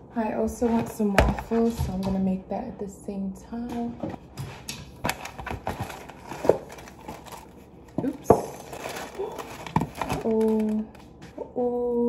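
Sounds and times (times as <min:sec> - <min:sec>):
plastic bag crinkling: 0:04.9 - 0:11.2.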